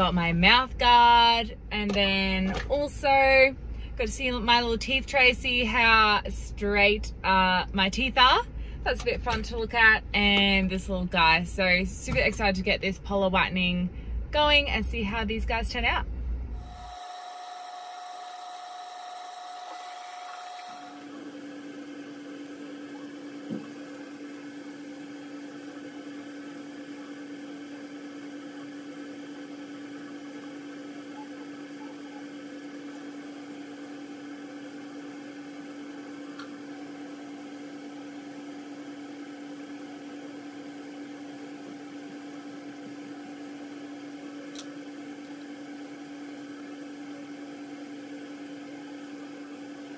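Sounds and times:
steady electric hum: 0.0 - 49.9
higher-pitched hum: 16.5 - 38.5.

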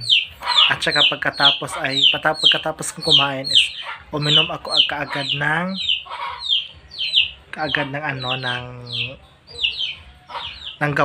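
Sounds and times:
chickens chirping: 0.0 - 11.0.

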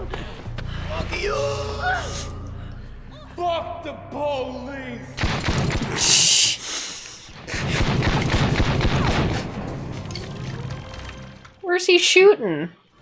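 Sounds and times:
film music: 0.0 - 13.0
gunfire: 5.2 - 6.2, 7.4 - 9.9
rapid gunshots: 5.2 - 6.2, 7.4 - 9.7.

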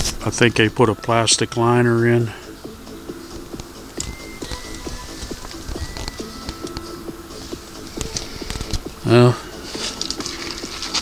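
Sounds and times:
faint high whistled tones: 4.0 - 7.6
footsteps on rocks and gravel: 9.6 - 11.0.

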